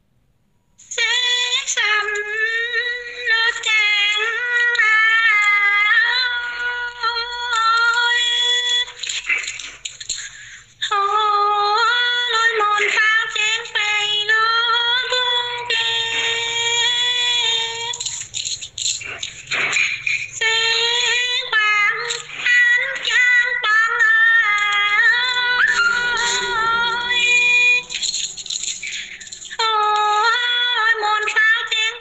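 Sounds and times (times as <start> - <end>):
woman singing unaccompanied: 0.8 - 9.3, 10.8 - 28.2, 28.8 - 32.0.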